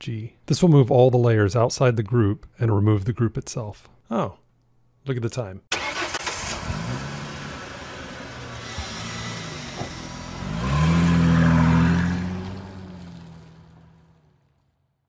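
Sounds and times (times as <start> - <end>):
car engine revving: 5.8 - 14.6.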